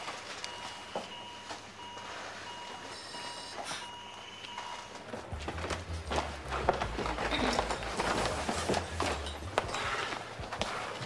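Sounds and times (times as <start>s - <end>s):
patient monitor beeping: 0.0s - 5.5s.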